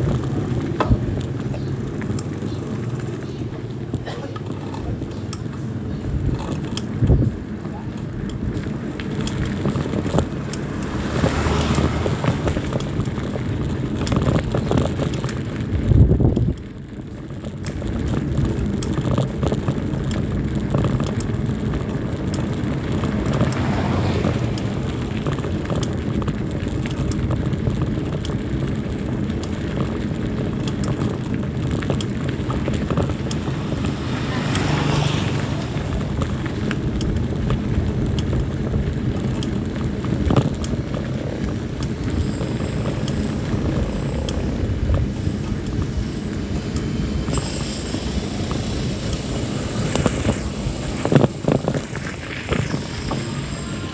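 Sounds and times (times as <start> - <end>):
bike tyres on rough asphalt: 0.0 - 53.9
wind buffeting microphone: 4.7 - 53.9.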